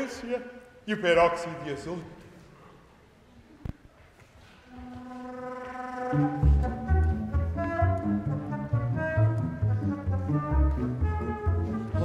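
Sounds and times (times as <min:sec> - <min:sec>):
middle register melody: 0:04.7 - 0:12.0.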